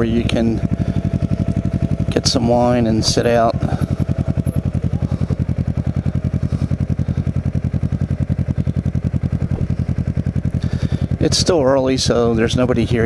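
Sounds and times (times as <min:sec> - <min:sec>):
motorcycle engine idling: 0:00.0 - 0:13.0.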